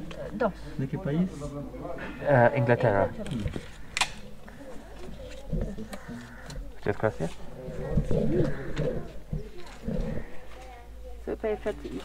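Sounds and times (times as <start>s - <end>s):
muffled voices talking: 0.0s - 12.0s.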